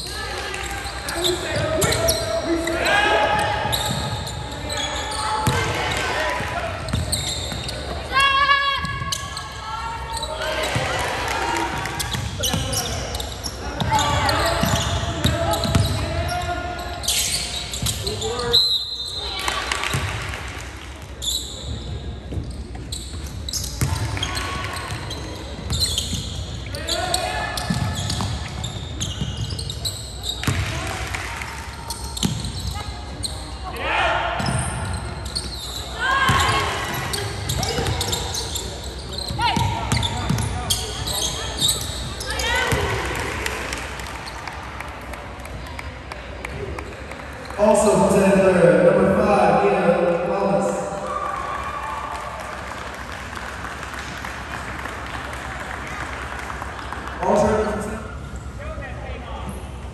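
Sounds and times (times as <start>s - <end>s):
basketball bouncing: 13.8s - 16.0s
referee's whistle: 17.1s - 19.4s
people calling out and shouting: 47.6s - 51.9s.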